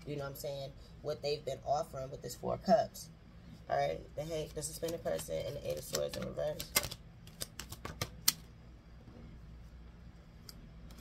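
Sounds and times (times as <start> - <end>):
cards snapping and clicking: 4.8 - 8.5.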